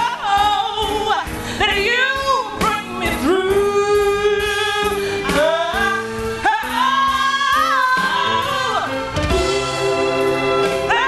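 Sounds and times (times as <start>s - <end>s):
woman singing into a microphone: 0.0s - 9.1s
gospel ballad accompaniment: 0.0s - 11.0s.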